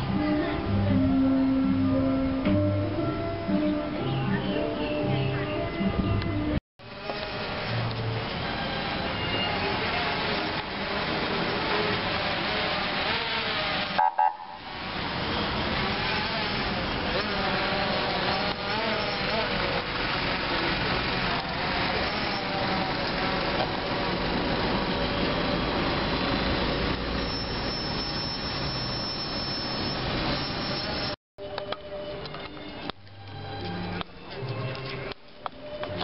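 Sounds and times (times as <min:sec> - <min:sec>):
vehicle engines driving past: 0:06.9 - 0:27.7.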